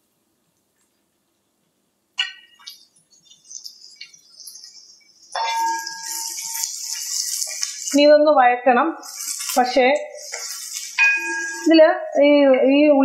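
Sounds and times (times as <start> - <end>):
spatula stirring metal pan: 2.2 - 8.3, 8.9 - 12.6
food sizzling in oil: 2.2 - 12.4.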